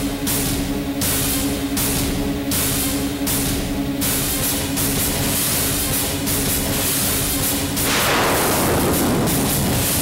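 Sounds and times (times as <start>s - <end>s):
repeated crashing swells: 7.8s - 10.0s.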